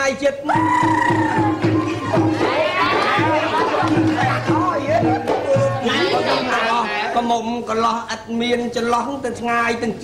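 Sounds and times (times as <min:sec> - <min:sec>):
excited chatter of voices: 0:00.5 - 0:07.5.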